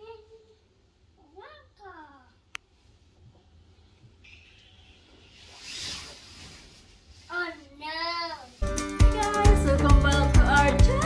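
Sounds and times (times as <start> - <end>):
child's sing-song voice: 7.3 - 11.0
music: 8.6 - 11.0.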